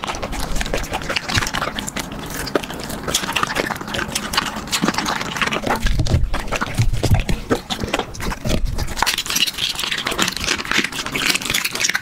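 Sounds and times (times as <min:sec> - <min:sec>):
dog chewing wetly: 0:00.0 - 0:12.0.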